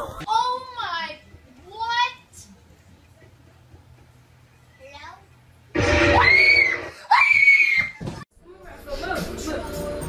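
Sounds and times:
loud high screams: 5.8 - 8.0.

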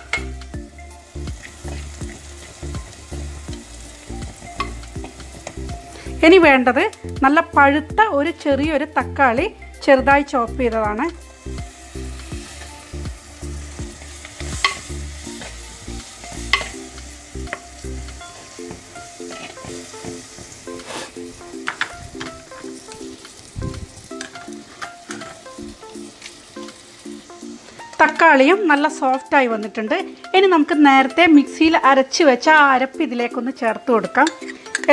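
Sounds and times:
masala sizzling in hot oil: 0.0 - 34.9
soft background music: 0.0 - 34.9.

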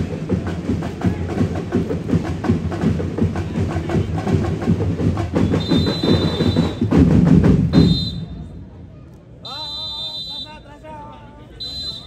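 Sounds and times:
drum ensemble fast rhythm: 0.0 - 8.2
steady high whistle: 5.4 - 6.9, 7.8 - 8.4, 9.4 - 10.7, 11.6 - 12.0.

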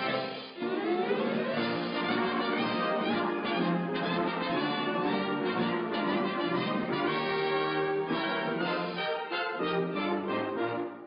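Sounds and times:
orchestral music with brass: 0.0 - 11.0.

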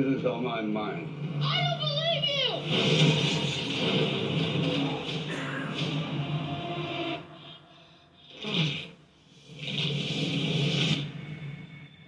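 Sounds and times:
movie trailer music: 1.0 - 7.7.

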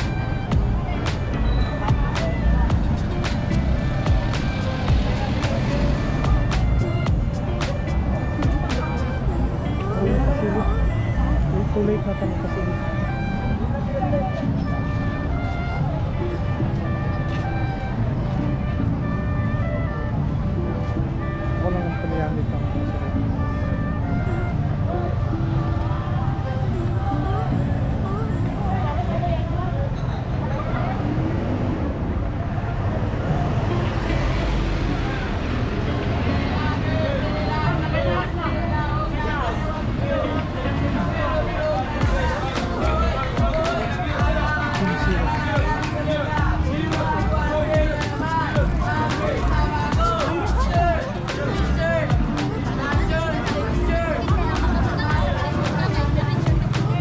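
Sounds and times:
crowd talking: 0.0 - 57.0
music playing: 0.0 - 57.0
traffic running: 0.0 - 57.0.

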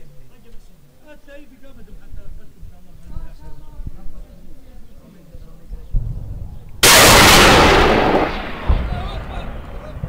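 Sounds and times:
heavy weapons fire blast: 6.8 - 9.6.

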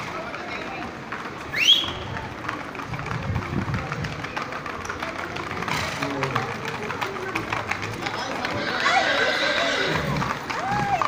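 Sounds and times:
hooves clattering on cobblestones: 0.0 - 11.0
murmur of voices: 0.0 - 11.0.

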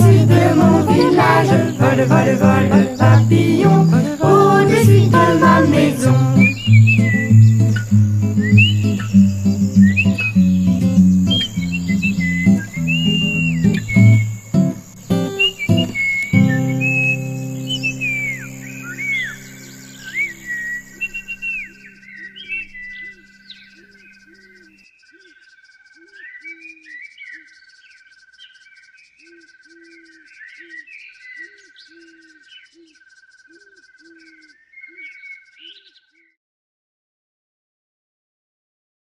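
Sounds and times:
fast high ticking: 0.0 - 20.7
short low calls: 0.0 - 22.0
acoustic guitar chord ringing: 0.0 - 23.2
pulsing insect trill: 0.0 - 24.4
birds chirping: 0.0 - 36.1.

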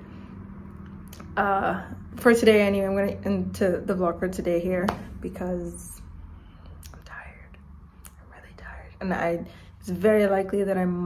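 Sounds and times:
low room hum: 0.0 - 11.0
woman speaking: 1.2 - 6.1, 8.3 - 11.0
whispered vocal sound: 6.6 - 9.8.

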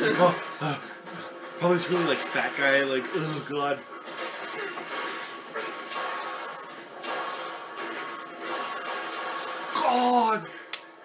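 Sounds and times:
action score music: 0.0 - 11.0
crashes and hits: 1.3 - 10.3.

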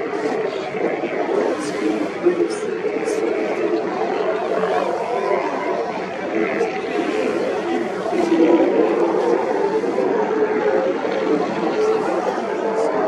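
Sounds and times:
babble of many voices: 0.0 - 13.0.

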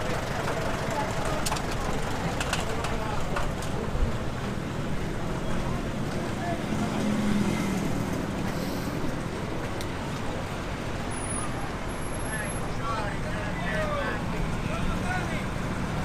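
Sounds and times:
street traffic: 0.0 - 16.0
vehicle engine running nearby: 0.0 - 16.0.

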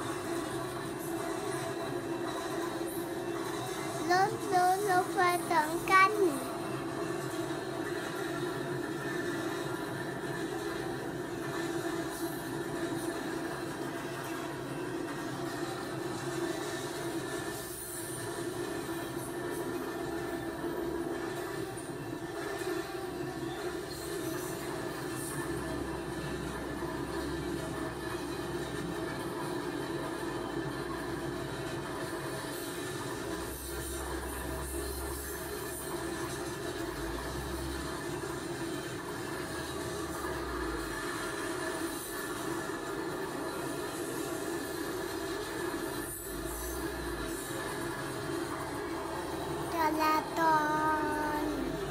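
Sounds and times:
train running on rails: 0.0 - 51.9.

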